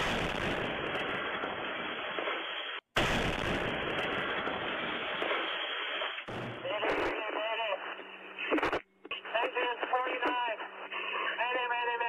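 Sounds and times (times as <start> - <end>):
burst of radio static: 0.0 - 12.0
steady radio hum: 6.6 - 12.0
person calling over radio: 8.5 - 12.0.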